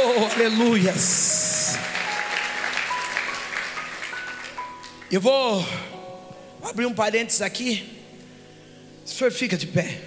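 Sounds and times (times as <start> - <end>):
congregation clapping: 0.0 - 5.3.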